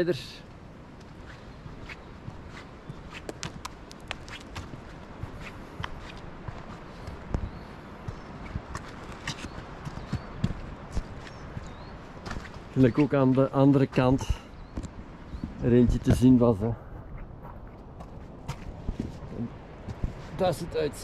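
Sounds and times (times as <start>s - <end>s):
steady background noise: 0.0s - 21.0s
footsteps on gravel: 1.0s - 14.5s.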